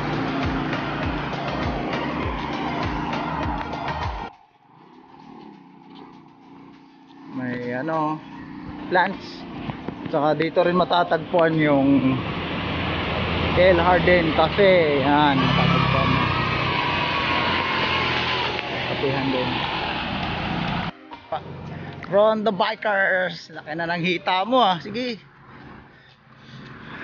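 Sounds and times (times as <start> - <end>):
road noise: 0.0 - 27.0
vehicle engine hum passing: 0.0 - 27.0.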